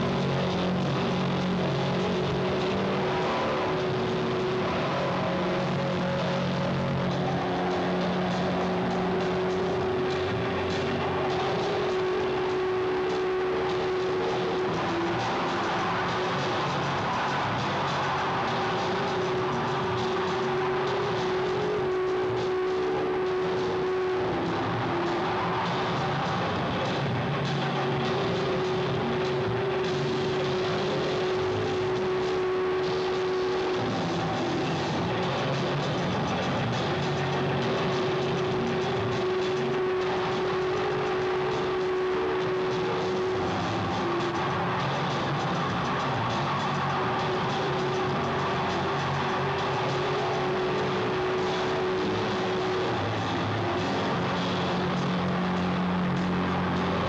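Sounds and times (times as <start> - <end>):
low sustained tones: 0.0 - 56.2
experimental electronic music: 0.0 - 57.0
held drone tone: 0.0 - 57.0.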